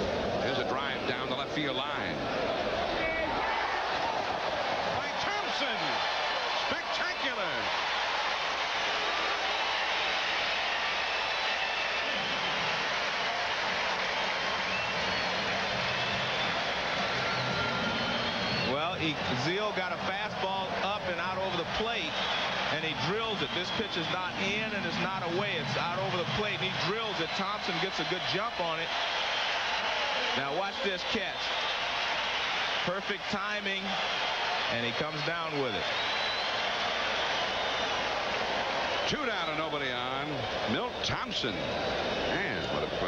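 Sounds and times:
murmur of stadium crowd: 0.0 - 43.0.

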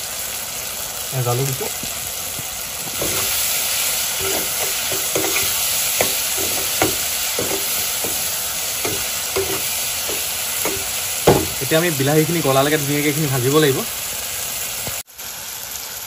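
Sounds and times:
vegetables sizzling in oil: 0.0 - 16.0
ladle scraping and clinking pan: 2.9 - 3.5, 4.2 - 11.6.

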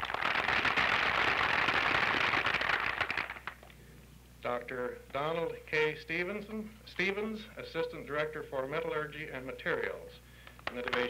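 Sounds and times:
audience applauding: 0.0 - 3.6.

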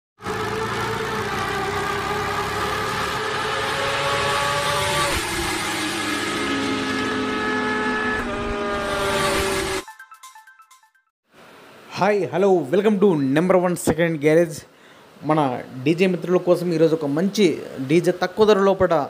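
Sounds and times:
motorcycle engine: 0.2 - 9.8.

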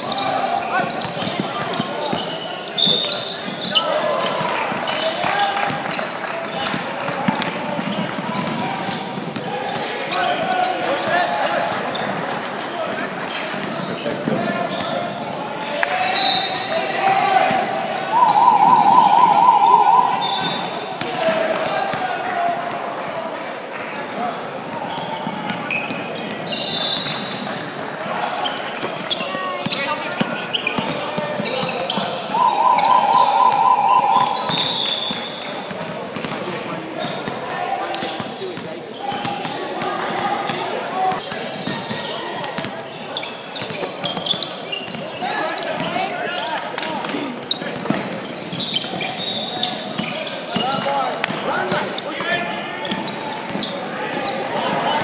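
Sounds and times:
sneakers squeaking: 0.1 - 4.4, 52.8 - 54.4
players calling out: 18.0 - 21.1, 32.2 - 35.3
loud warbling signal tone: 18.1 - 20.8, 32.3 - 35.1.

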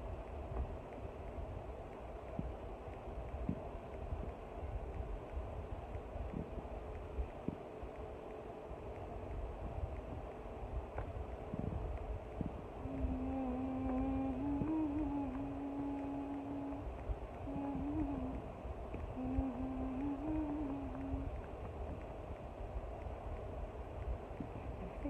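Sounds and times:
low rumble: 0.0 - 25.0
woman humming: 12.8 - 21.4, 24.4 - 25.0.

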